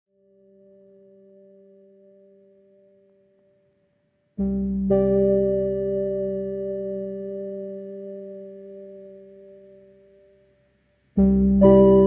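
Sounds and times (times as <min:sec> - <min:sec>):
soft electronic tones chord: 0:00.2 - 0:12.0.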